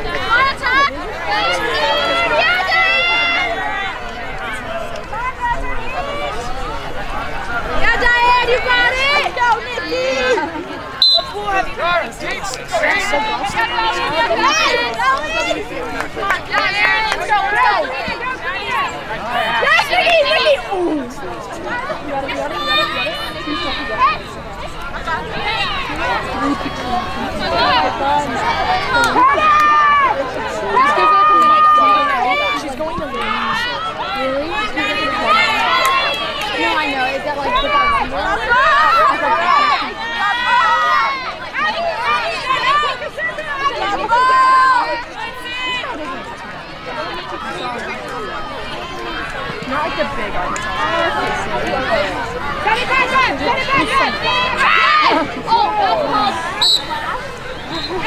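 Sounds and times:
girls shouting: 0.0 - 4.0, 25.0 - 58.0.

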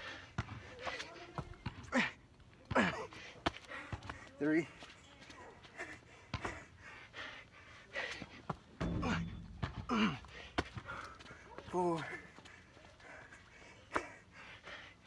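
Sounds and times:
man panting: 0.0 - 1.4, 2.0 - 4.9, 5.6 - 15.0
soft knocks on ground: 8.8 - 10.9.

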